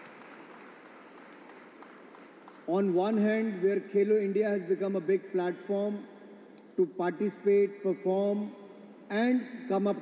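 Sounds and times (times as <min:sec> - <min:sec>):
large hall ambience: 0:00.0 - 0:10.0.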